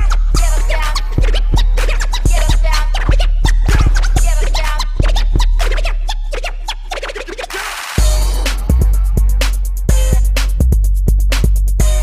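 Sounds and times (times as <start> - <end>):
record scratching: 0.0 - 10.5
electro bass dance track: 0.0 - 12.0.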